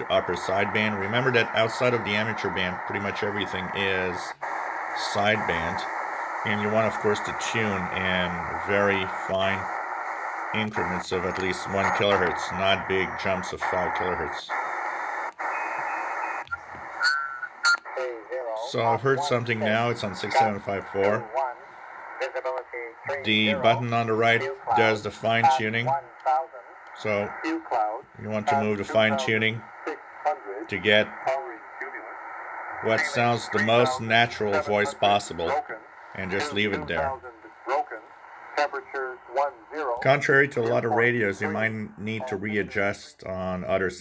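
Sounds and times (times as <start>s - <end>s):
shortwave static hiss: 0.0s - 44.0s
faint high whistle: 15.5s - 17.8s.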